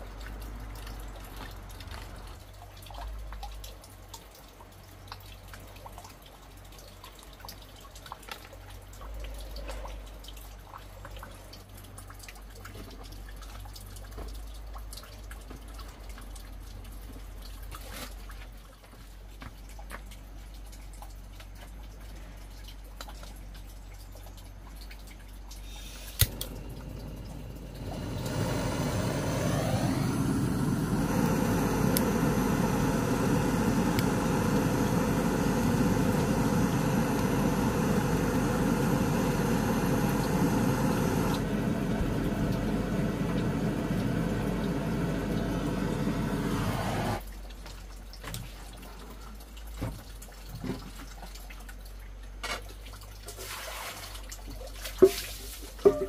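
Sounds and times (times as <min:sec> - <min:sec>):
gas torch flame hissing: 0:25.7 - 0:47.2
gas torch lighting click: 0:26.0 - 0:47.2.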